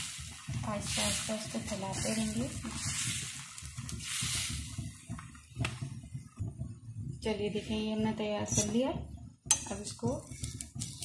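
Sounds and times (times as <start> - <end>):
batter sizzling on a hot pan: 0.0 - 11.0.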